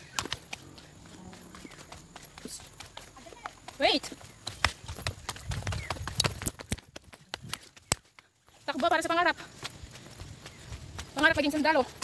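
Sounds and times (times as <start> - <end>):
footsteps on concrete steps: 0.0 - 12.0.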